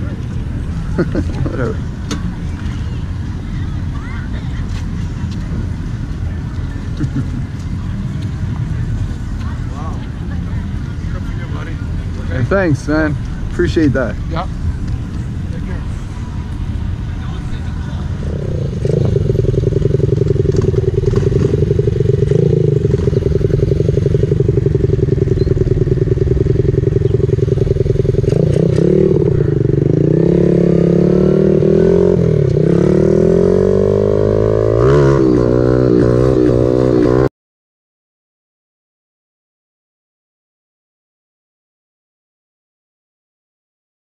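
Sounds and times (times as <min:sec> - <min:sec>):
mini bike engine revving: 0:18.3 - 0:37.3.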